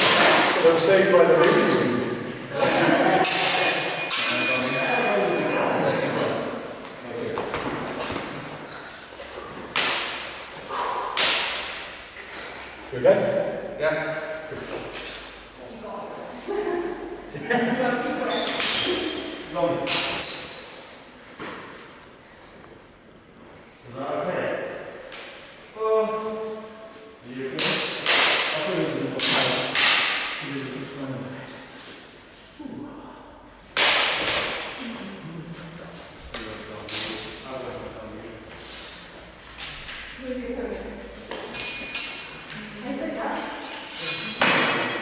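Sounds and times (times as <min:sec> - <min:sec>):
steel blades striking: 0:02.8 - 0:05.1.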